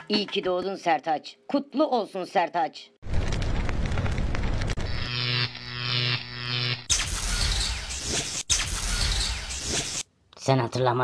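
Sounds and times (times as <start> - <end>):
dense crackling noise: 3.0 - 5.8.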